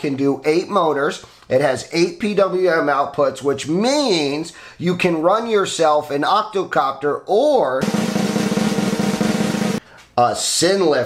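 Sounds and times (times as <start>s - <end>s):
snare drum roll: 7.8s - 9.8s.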